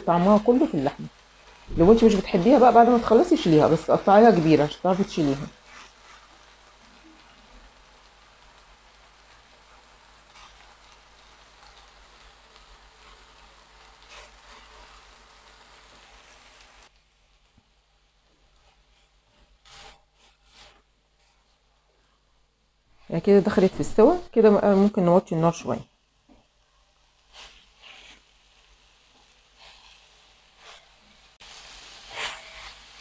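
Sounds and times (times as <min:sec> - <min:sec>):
beef sizzling in a pan: 0:00.0 - 0:33.0
spatula scraping a pan: 0:01.4 - 0:07.4, 0:09.8 - 0:16.4, 0:18.4 - 0:21.7, 0:27.2 - 0:33.0.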